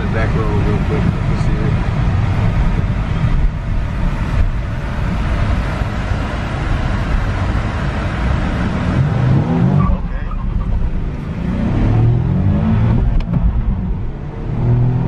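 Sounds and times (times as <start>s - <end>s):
car engine accelerating hard: 0.0s - 15.0s
road noise: 0.0s - 15.0s.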